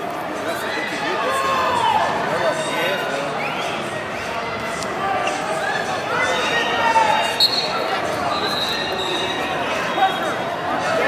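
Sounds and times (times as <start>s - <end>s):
voices echoing in arena: 0.0s - 11.0s
referee's whistle: 6.4s - 10.4s.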